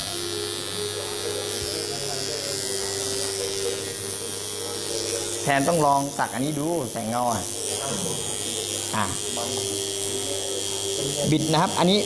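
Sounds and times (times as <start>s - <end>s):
tattoo machine buzzing: 0.0s - 12.0s.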